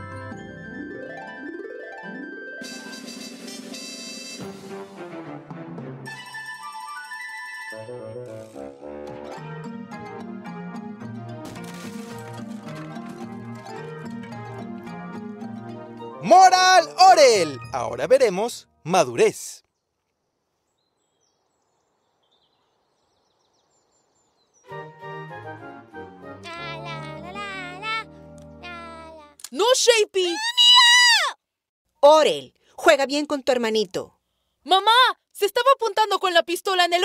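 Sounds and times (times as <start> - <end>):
theme music high melody: 12.9 - 18.6, 24.7 - 29.3.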